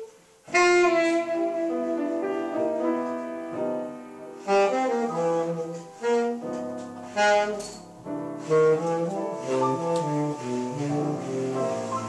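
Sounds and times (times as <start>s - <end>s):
jazz piano chords: 0.0s - 12.0s
saxophone melody: 0.0s - 12.0s.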